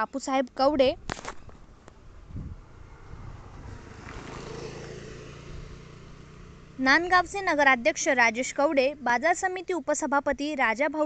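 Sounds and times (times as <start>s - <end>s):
motor vehicle engine running: 1.6s - 9.9s.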